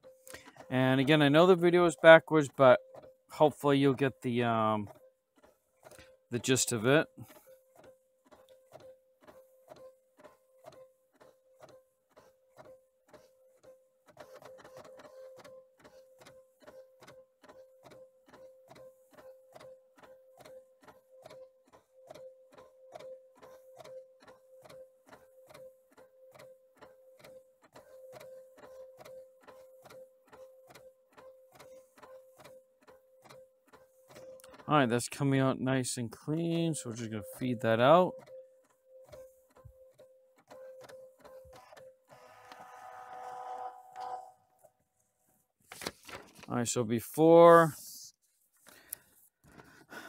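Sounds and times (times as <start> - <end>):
printer whine: 0.0 - 44.8
printer clicking: 3.9 - 25.7, 26.3 - 35.0, 39.0 - 44.7.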